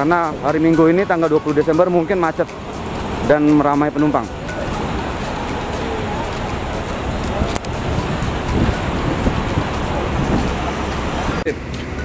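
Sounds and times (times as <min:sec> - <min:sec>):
idling bus diesel engines: 0:00.0 - 0:12.0
faint voices of people: 0:04.0 - 0:11.6.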